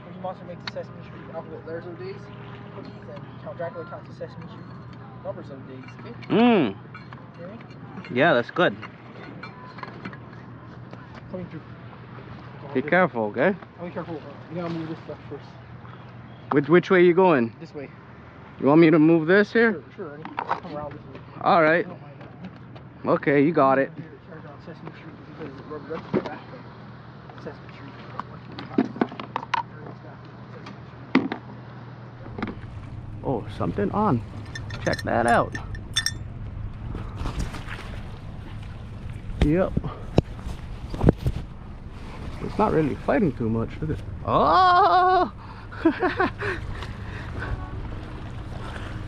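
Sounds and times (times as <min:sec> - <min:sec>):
outdoor background noise: 0:00.0 - 0:49.0
steady low hum: 0:30.0 - 0:49.0
fishing gear clicks and knocks: 0:34.2 - 0:36.3.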